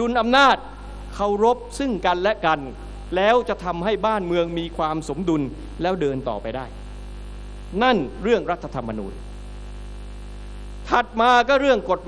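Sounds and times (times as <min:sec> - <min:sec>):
person speaking: 0:00.0 - 0:06.8, 0:07.7 - 0:09.2, 0:10.8 - 0:12.0
low electrical mains hum: 0:00.0 - 0:12.0.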